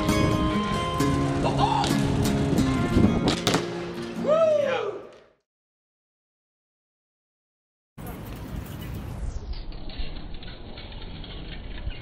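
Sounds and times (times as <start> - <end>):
bike tyres crackling over stone paving: 0.0 - 3.6, 8.0 - 12.0.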